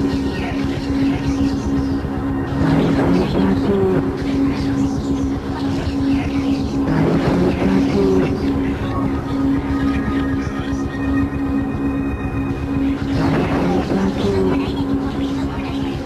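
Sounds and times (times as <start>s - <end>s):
dense low rumble: 0.0s - 16.0s
droning tone: 0.0s - 16.0s
noisy surge: 0.0s - 16.0s.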